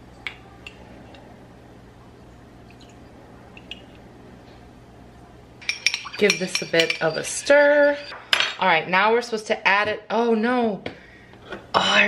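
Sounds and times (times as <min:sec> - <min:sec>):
faint clicks and drips: 0:02.6 - 0:04.0
metal spoon clinking ceramic: 0:05.6 - 0:08.6.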